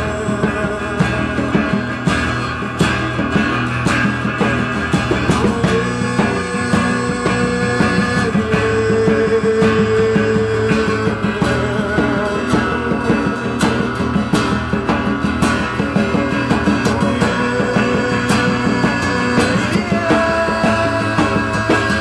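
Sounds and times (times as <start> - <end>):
acoustic guitars strumming: 0.0 - 22.0
djembe drumming: 0.0 - 22.0.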